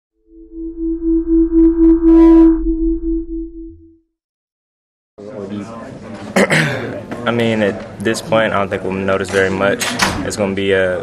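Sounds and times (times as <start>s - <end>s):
pulsing electronic tone: 0.2s - 4.0s
deep drone: 0.2s - 4.1s.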